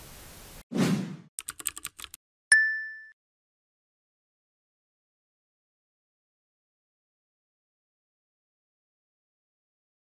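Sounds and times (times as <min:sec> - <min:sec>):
keyboard typing clicks: 0:01.4 - 0:02.2.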